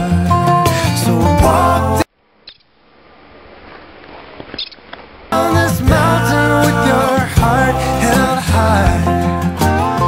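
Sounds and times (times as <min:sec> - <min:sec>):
background music: 0:00.0 - 0:02.1, 0:05.4 - 0:10.0
outdoor ambient hiss: 0:01.6 - 0:07.1.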